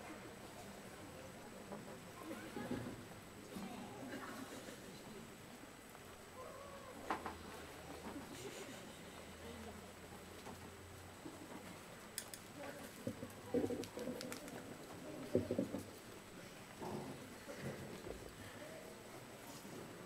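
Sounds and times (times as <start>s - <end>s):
faint clicks: 12.2s - 14.7s.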